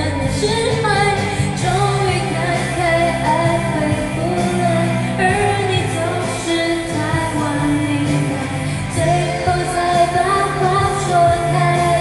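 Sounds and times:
backing track: 0:00.0 - 0:12.0
woman singing pop song: 0:00.0 - 0:12.0.

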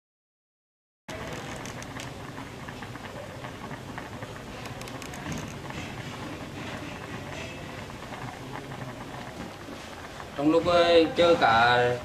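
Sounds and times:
stew bubbling in a pot: 0:01.1 - 0:12.0.

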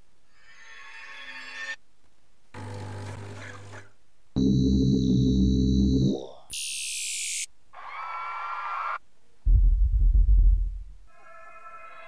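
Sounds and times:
low synth chord: 0:04.4 - 0:06.3
mid-pitched synth texture: 0:04.4 - 0:07.5.

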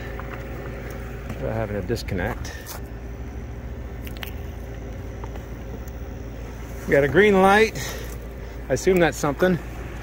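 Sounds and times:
faint steady hum: 0:00.0 - 0:10.0
generator engine drone: 0:00.0 - 0:10.0.

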